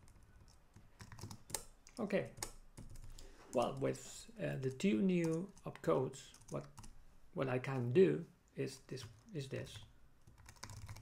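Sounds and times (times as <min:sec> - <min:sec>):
typing on computer keyboard: 0:00.0 - 0:03.8, 0:09.0 - 0:11.0.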